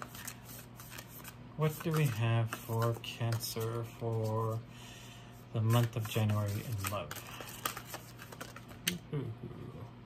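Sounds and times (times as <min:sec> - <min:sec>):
cards clicking and tapping: 0:00.0 - 0:03.7, 0:05.6 - 0:09.0
low steady hum: 0:00.0 - 0:10.0.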